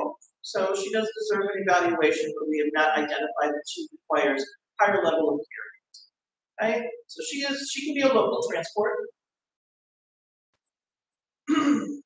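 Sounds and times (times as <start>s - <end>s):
person clearing throat: 11.4s - 12.0s.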